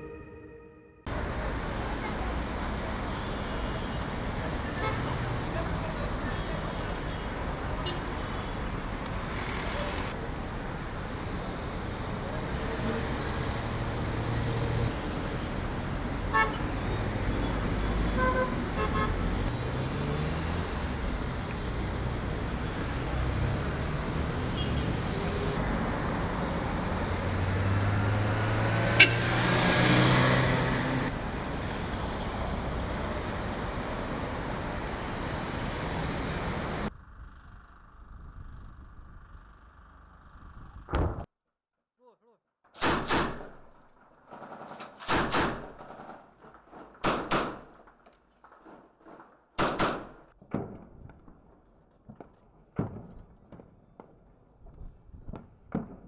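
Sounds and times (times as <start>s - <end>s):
car engines passing: 1.1s - 40.8s
car horn toots: 28.9s - 29.4s.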